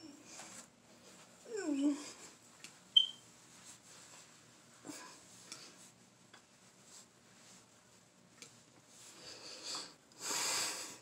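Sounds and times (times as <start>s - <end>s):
sharp high squeak: 3.0s - 3.2s.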